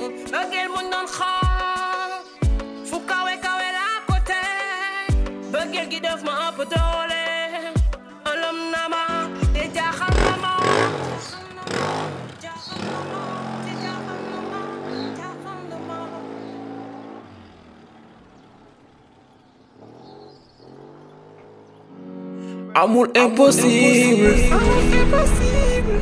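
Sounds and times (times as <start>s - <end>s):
background music: 0.0s - 18.1s, 20.8s - 26.0s
motorcycle engine revving: 9.5s - 22.2s.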